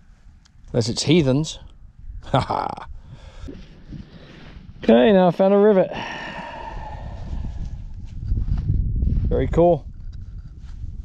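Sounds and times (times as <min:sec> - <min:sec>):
rumbling and rustling on microphone: 0:00.0 - 0:11.0.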